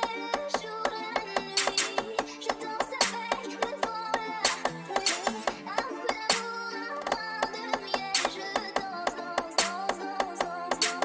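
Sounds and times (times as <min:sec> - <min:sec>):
drill beat: 0:00.0 - 0:11.0
snare hits: 0:00.0 - 0:11.0.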